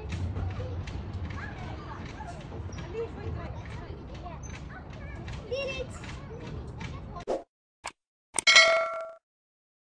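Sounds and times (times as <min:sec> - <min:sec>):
bright bell-like ding: 0:08.4 - 0:09.2.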